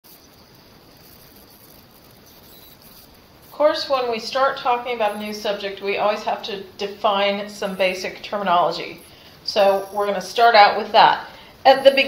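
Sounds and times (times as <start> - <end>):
faint high-pitched whine: 0.0 - 12.0
low hiss: 0.0 - 12.0.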